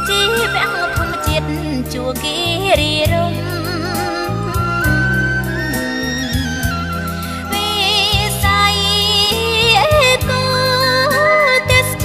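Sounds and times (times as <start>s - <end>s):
woman singing: 0.0s - 5.0s, 7.4s - 12.0s
backing band with bass line: 0.0s - 12.0s.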